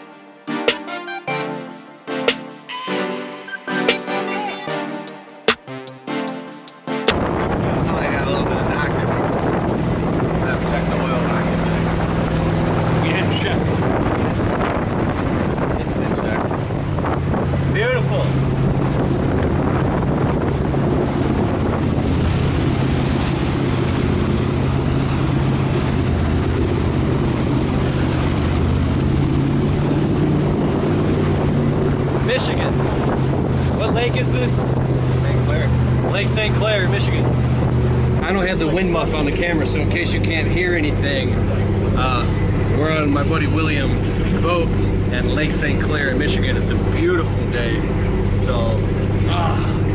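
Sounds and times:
motorboat engine running: 0:04.9 - 0:49.9
water rushing past hull: 0:07.1 - 0:49.9
wind buffeting microphone: 0:07.1 - 0:49.9.

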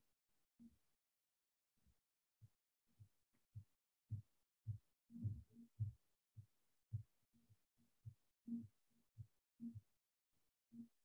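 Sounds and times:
muffled low thumps: 0:04.1 - 0:06.0.

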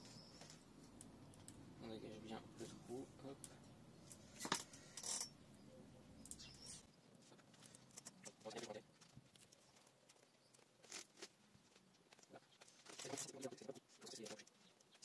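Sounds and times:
scraping and rustling of soil: 0:06.6 - 0:15.0.

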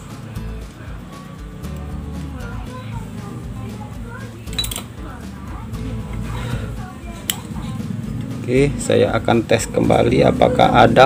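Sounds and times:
faint background speech: 0:00.0 - 0:11.0
steady low hum: 0:00.0 - 0:11.0.

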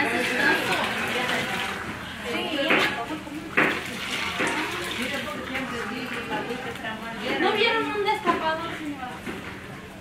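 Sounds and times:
liquid splashing into metal pail: 0:00.0 - 0:06.8
people talking: 0:00.0 - 0:09.4.

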